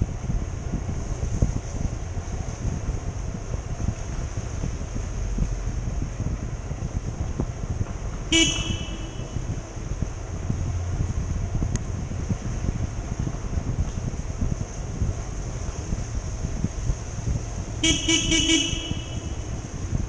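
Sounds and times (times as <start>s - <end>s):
motorbike rumble: 0.0s - 20.0s
wind in tunnel: 0.0s - 20.0s
vehicle horn honk: 8.3s - 9.4s, 17.8s - 19.5s.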